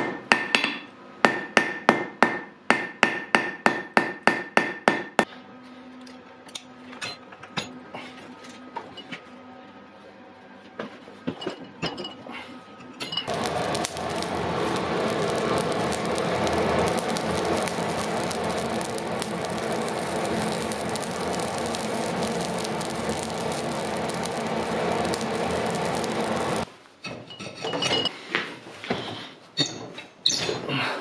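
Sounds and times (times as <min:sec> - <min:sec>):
forge fire rushing and crackling: 0:13.3 - 0:26.7.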